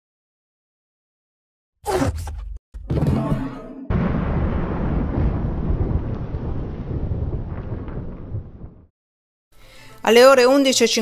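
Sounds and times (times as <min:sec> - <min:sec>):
deep rumbling noise: 0:03.9 - 0:08.9.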